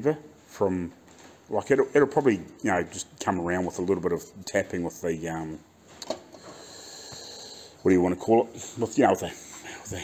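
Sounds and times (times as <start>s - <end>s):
soft hiss of breath: 6.3s - 7.9s.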